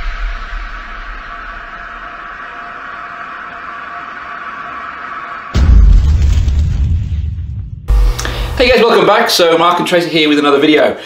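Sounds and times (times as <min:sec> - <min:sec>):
synthesized rushing drone: 0:00.0 - 0:08.8.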